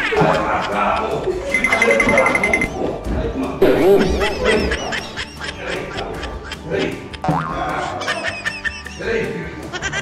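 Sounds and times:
agitated voices: 0.0s - 10.0s
high electronic beeping tone: 1.5s - 2.8s.

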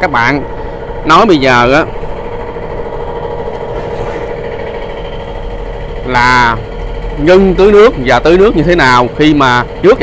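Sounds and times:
engine humming steadily: 0.0s - 10.0s.

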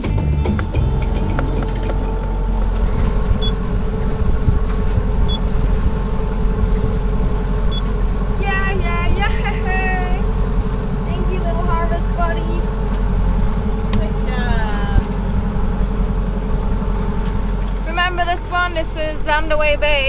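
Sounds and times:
low engine rumble: 0.0s - 20.0s
person speaking: 8.4s - 10.3s.

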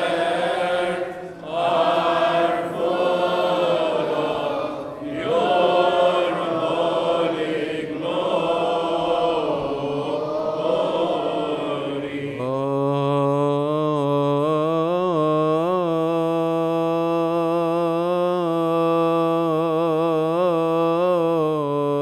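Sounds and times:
group chanting in unison: 0.0s - 16.4s.

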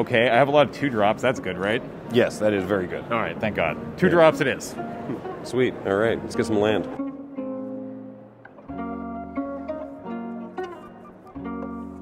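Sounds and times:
plucked guitar: 3.5s - 12.0s.

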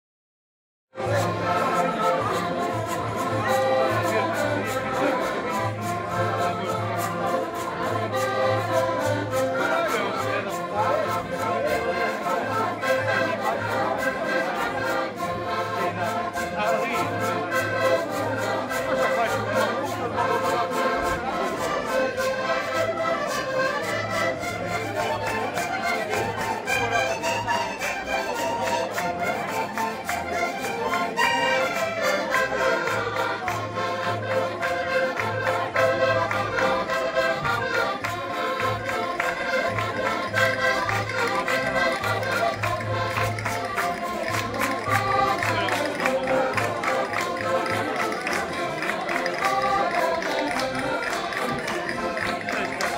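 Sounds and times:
accordions playing folk tune: 1.0s - 52.9s.

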